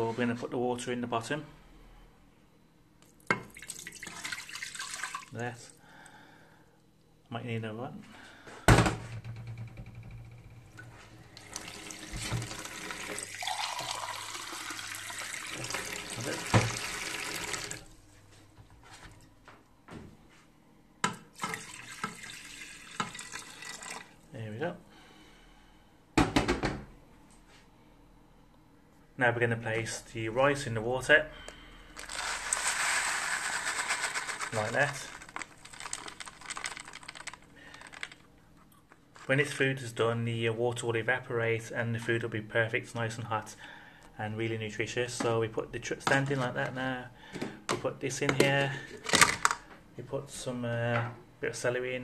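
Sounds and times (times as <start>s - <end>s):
tap water filling a mug: 3.3s - 5.3s, 11.4s - 17.8s, 21.0s - 24.2s
rice grains pouring into pot: 11.4s - 17.8s, 32.0s - 38.2s.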